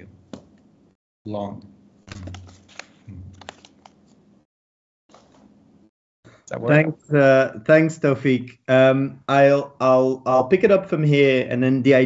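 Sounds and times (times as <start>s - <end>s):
computer keys clicking: 2.1s - 4.0s.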